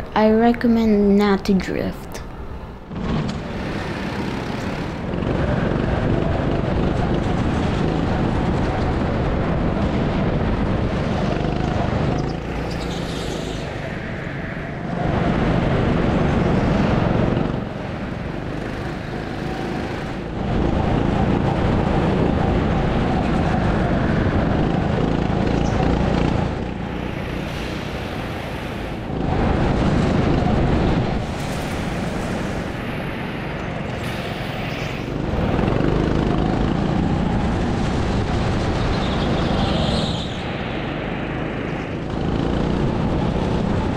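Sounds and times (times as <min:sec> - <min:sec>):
go-kart engine at speed: 0:02.8 - 0:32.8, 0:33.4 - 0:43.9.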